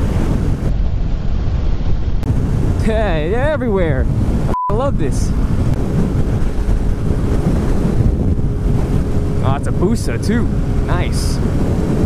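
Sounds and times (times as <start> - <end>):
wind noise on microphone: 0.0 - 12.0
motorcycle engine droning: 5.4 - 12.0.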